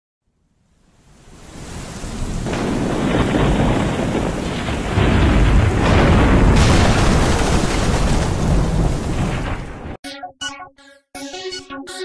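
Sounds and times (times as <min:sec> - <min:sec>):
rain hissing: 0:00.7 - 0:10.0
rolling thunder: 0:01.3 - 0:10.0.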